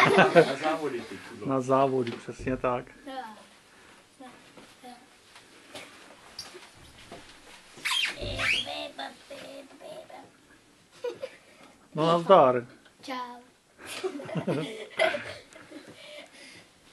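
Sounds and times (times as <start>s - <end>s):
child squealing: 7.9s - 8.8s.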